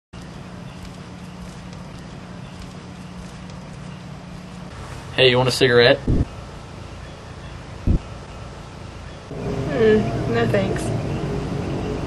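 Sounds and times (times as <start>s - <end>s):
low hum and hiss: 0.2s - 12.0s.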